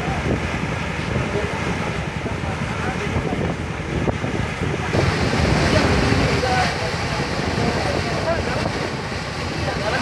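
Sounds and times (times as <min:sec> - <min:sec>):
boat engine rumble: 0:00.0 - 0:10.0
rushing water: 0:00.0 - 0:10.0
wind buffeting microphone: 0:00.0 - 0:10.0.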